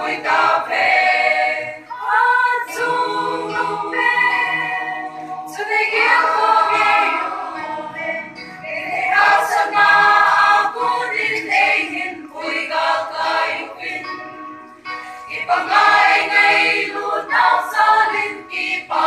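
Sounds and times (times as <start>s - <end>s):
mixed choir singing: 0.0s - 19.0s.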